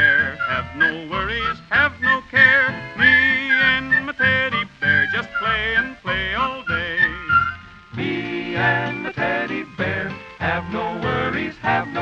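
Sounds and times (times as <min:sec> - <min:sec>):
man yodeling: 0:00.0 - 0:07.6
country band with steady bass: 0:00.0 - 0:12.0.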